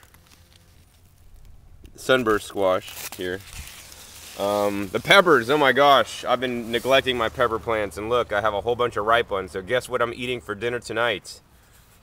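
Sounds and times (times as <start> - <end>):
rustling leaves and handling noise: 0.0 - 10.8.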